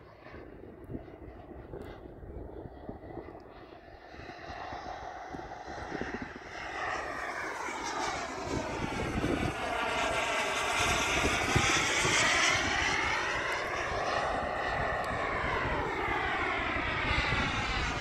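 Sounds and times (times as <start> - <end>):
model jet turbine whine: 0.0 - 18.0.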